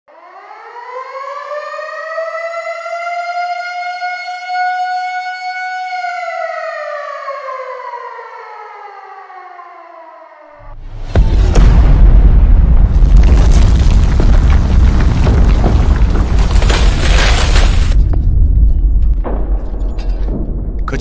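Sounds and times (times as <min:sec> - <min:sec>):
air-raid siren wailing: 0:00.1 - 0:10.8.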